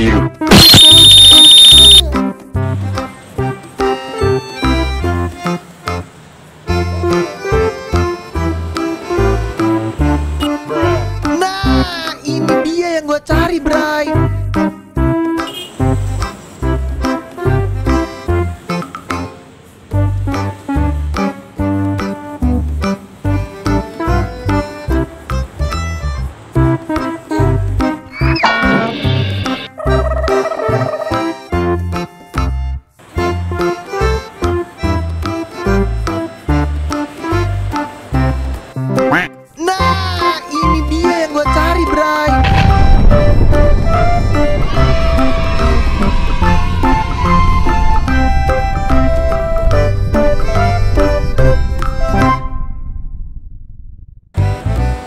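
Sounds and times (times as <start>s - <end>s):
background music: 0.0s - 52.5s, 54.4s - 55.0s
high-pitched electronic beep: 0.5s - 2.0s, 28.1s - 29.7s
animal call sound effect: 28.1s - 31.1s.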